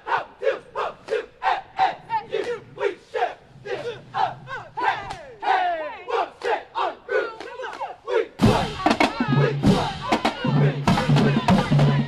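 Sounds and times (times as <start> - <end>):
cheerleaders chanting in unison: 0.0 - 12.0.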